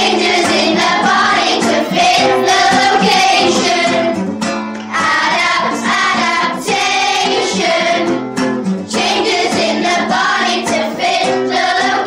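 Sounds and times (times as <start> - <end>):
voices singing: 0.0 - 4.3, 4.9 - 8.2, 8.9 - 12.0
instrumental backing: 0.0 - 12.0.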